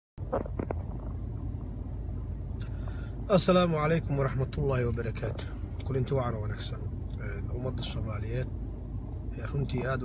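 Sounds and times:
car interior rumble: 0.2s - 10.0s.

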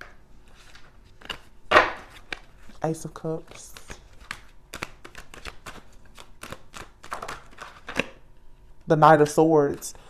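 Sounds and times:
cards being shuffled: 0.0s - 8.2s.

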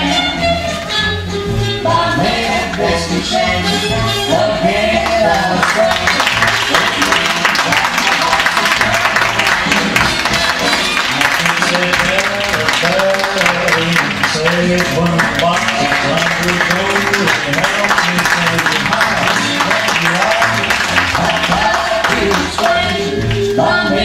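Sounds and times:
ballroom dance music: 0.0s - 24.0s.

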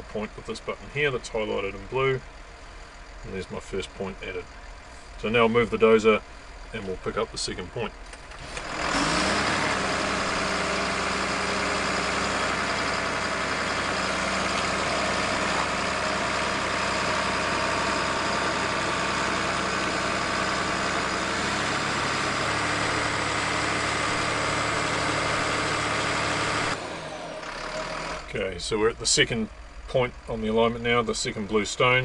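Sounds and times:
bulldozer diesel engine running: 0.0s - 32.0s.

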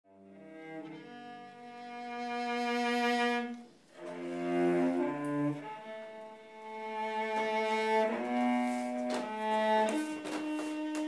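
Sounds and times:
cello bowed notes: 0.1s - 11.0s.

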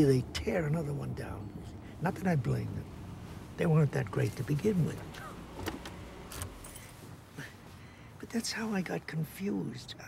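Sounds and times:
low steady car cabin rumble: 0.0s - 10.0s
soft jingles: 6.3s - 7.5s.

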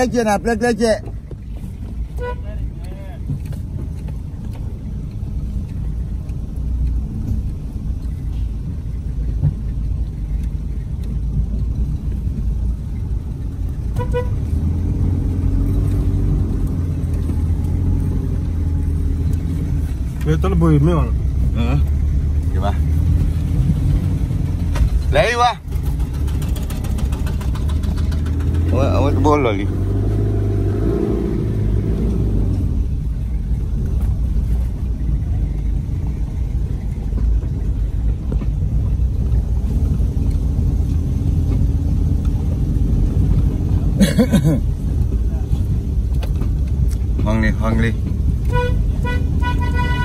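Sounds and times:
car driving on dirt road: 0.0s - 50.0s.

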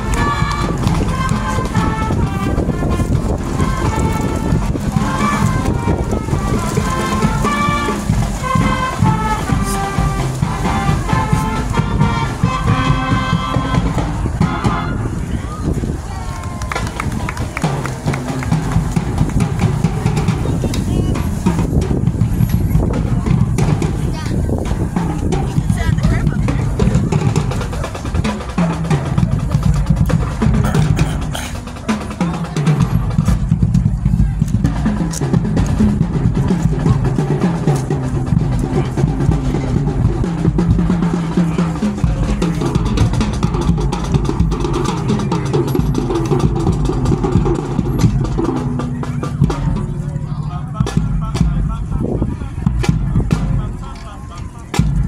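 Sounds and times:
low held brass notes: 0.0s - 15.4s
marching band playing: 0.0s - 55.0s
steady drum beat: 0.0s - 55.0s.

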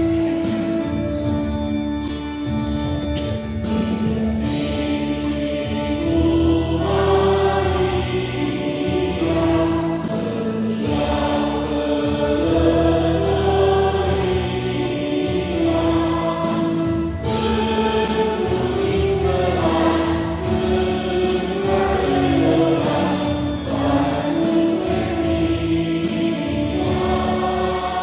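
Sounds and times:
low accompaniment: 0.0s - 28.0s
choir singing a slow hymn: 3.7s - 28.0s.

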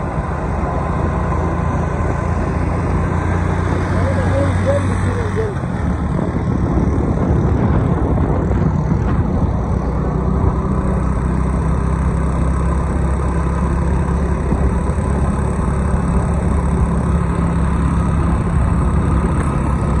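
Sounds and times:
road and wind rush: 0.0s - 20.0s
vehicle engine droning: 0.0s - 20.0s.

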